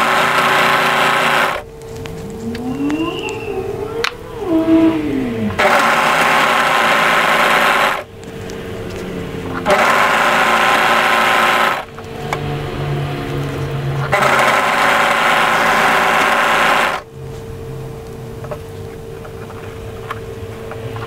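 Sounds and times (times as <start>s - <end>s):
overlocker stitching fabric: 0.0s - 1.7s, 5.6s - 8.1s, 9.6s - 11.9s, 14.0s - 17.0s.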